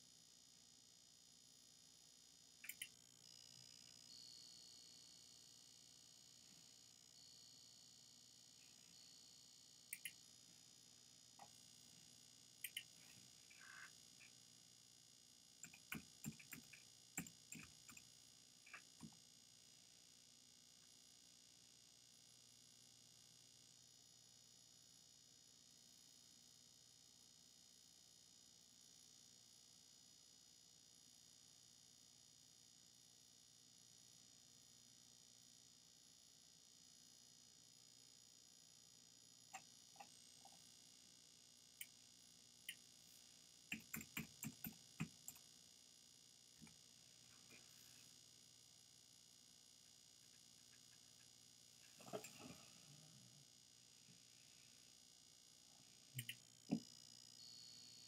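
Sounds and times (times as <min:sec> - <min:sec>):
computer keyboard typing: 0:15.6 - 0:18.0, 0:43.7 - 0:45.4.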